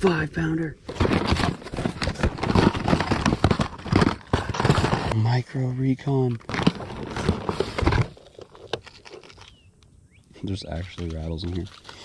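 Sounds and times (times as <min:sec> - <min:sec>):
plastic packages crinkling: 0:00.9 - 0:05.2, 0:06.4 - 0:09.6, 0:10.8 - 0:12.0.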